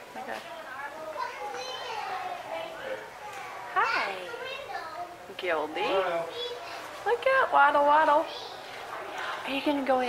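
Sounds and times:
children's chatter: 0.6 - 7.4, 8.1 - 9.5.

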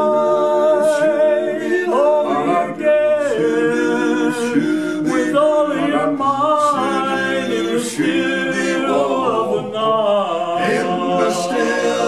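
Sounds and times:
male quartet singing a cappella: 0.0 - 12.0.

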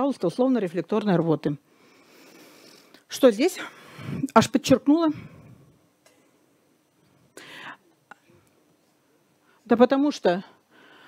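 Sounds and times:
whispered breath: 7.3 - 8.5.

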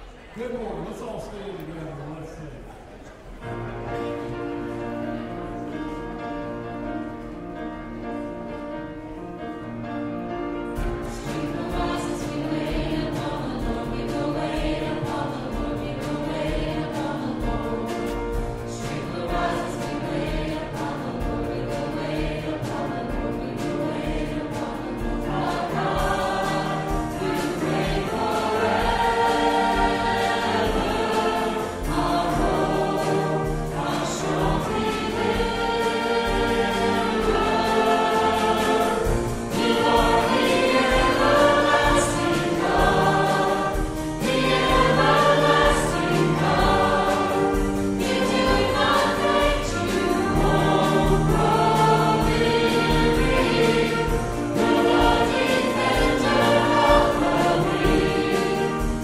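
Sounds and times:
congregation singing a hymn: 3.4 - 59.0.

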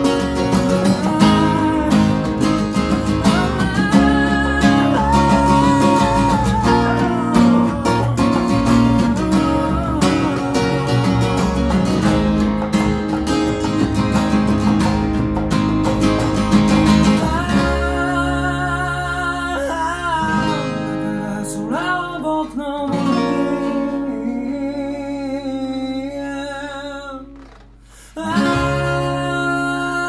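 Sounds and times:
person singing: 0.0 - 11.7, 17.0 - 30.0
acoustic guitar strumming: 0.0 - 30.0.

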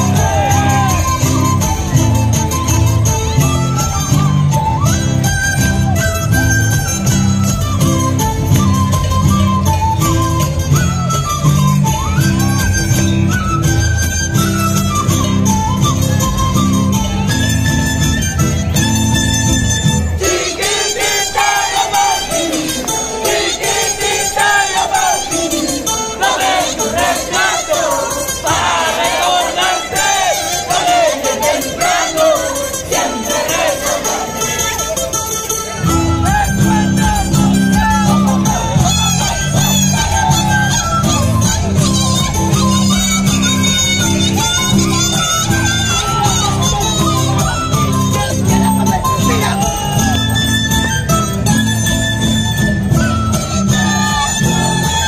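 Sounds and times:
carnival music: 0.0 - 55.0
high voices singing and shouting: 20.2 - 34.9.

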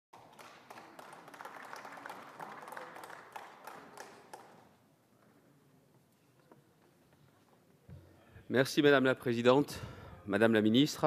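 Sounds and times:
scattered applause: 0.1 - 4.8.

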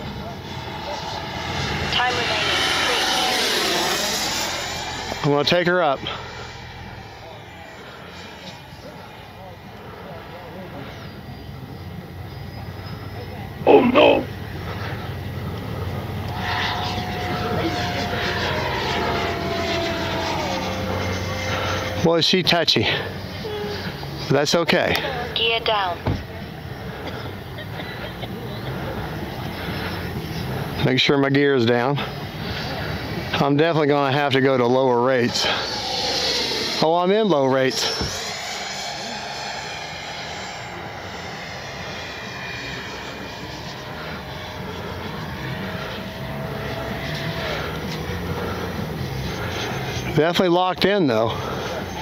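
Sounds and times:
distant jet fan rushing: 0.0 - 52.0
thin high whine: 0.0 - 52.0.

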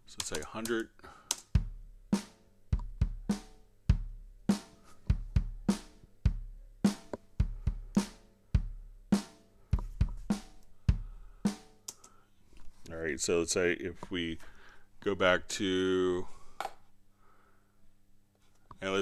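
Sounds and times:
programmed drum beat: 0.0 - 12.0.

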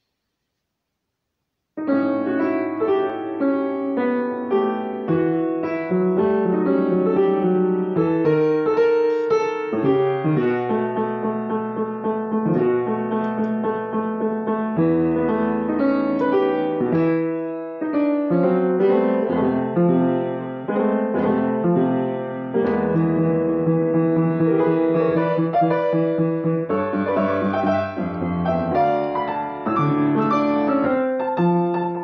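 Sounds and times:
piano melody over chords: 1.8 - 32.0.

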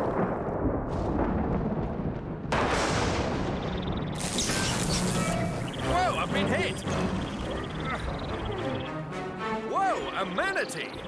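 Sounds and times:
low thunder rumble: 0.0 - 4.2
sharp thunderclap: 0.0 - 6.4.

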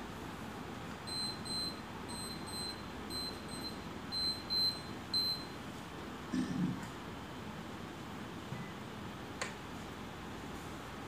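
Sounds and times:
electronic alarm double beeps: 1.1 - 5.5.

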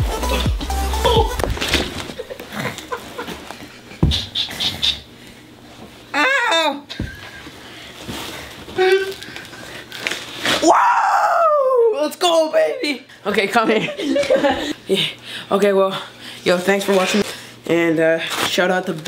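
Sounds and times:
person crying out: 0.3 - 1.6, 6.2 - 6.9, 8.8 - 9.2, 10.6 - 12.0
person yelling: 1.0 - 1.4, 10.6 - 12.9.

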